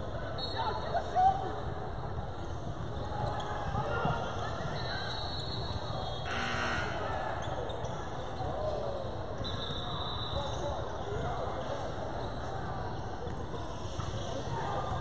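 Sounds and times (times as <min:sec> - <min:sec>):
echoing voices in gym: 0:00.0 - 0:15.0.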